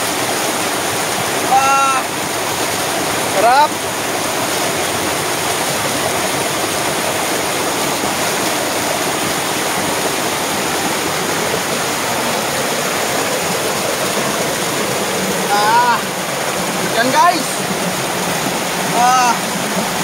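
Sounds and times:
waterfall splashing over rock: 0:00.0 - 0:20.0.

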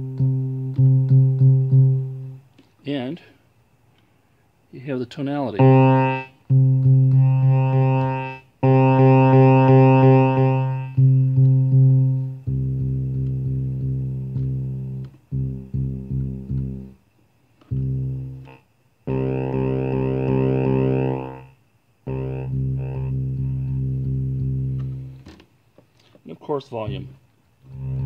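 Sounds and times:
synthesizer bass note through amplifier: 0:00.0 - 0:02.4, 0:05.6 - 0:17.0, 0:17.6 - 0:25.3, 0:26.8 - 0:28.0.

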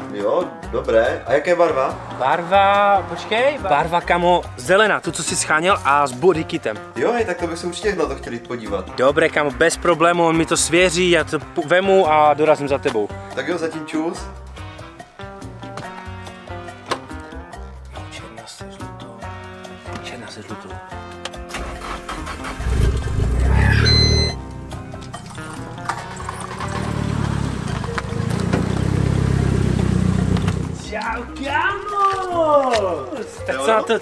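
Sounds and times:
background music with steady beat: 0:00.0 - 0:22.1
car engine starting and rumbling: 0:21.5 - 0:30.8.

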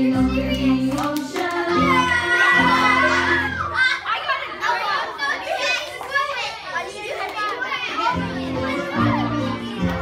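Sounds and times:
children chattering and exclaiming: 0:00.0 - 0:10.0.

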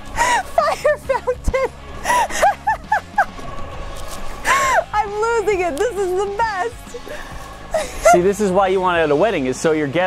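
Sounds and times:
woman laughing hard: 0:00.2 - 0:03.5, 0:04.5 - 0:05.0, 0:06.9 - 0:08.3.

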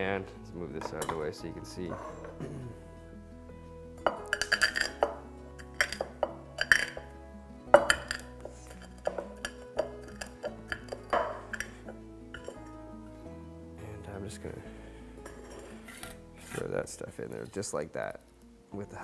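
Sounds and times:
background music: 0:00.0 - 0:19.0
cardamom pods cracking under saucepan: 0:04.1 - 0:07.1, 0:07.8 - 0:12.7.

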